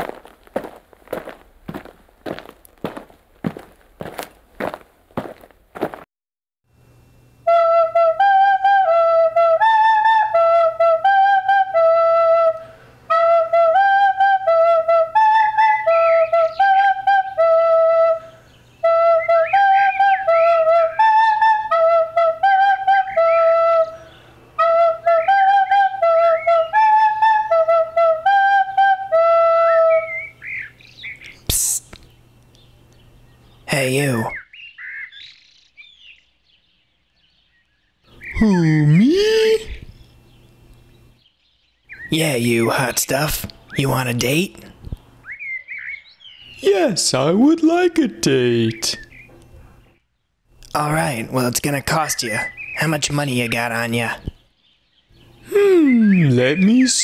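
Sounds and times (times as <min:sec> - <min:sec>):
low steady hum: 0:06.7 - 0:34.4, 0:35.6 - 0:45.3
flute melody: 0:07.5 - 0:18.2.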